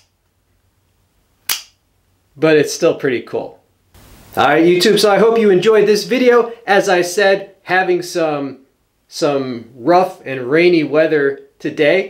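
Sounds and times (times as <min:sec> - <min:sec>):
switchblade spring snap: 0:01.5 - 0:01.8.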